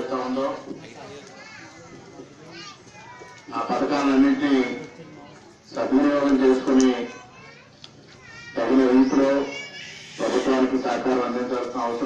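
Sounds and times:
man speaking over public address: 0.0 - 1.2, 3.5 - 5.0, 5.7 - 7.3, 8.4 - 12.0.

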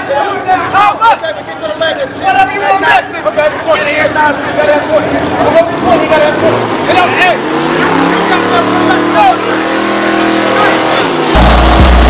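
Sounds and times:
men's voices: 0.0 - 11.3
race car engine running: 3.3 - 12.0.

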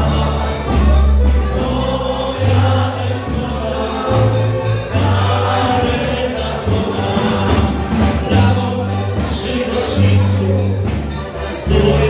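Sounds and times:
accordion: 0.0 - 12.0
folk dance band music: 0.0 - 12.0.

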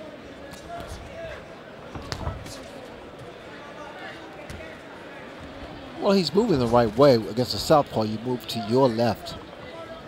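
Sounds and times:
crowd murmur: 0.0 - 10.0.

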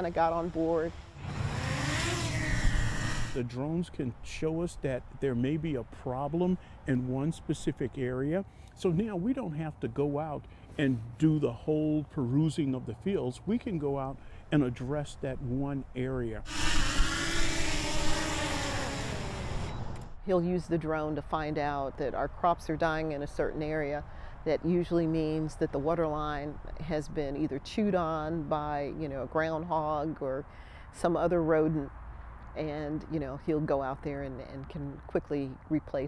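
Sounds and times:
drone propellers whirring: 0.1 - 3.4, 16.5 - 20.2.

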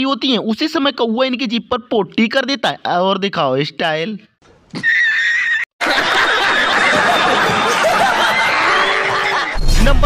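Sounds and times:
loud laughter: 4.8 - 9.6.

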